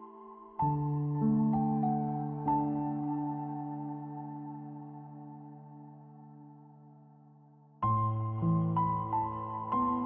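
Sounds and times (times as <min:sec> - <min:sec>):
slow piano chords: 0:00.0 - 0:10.0.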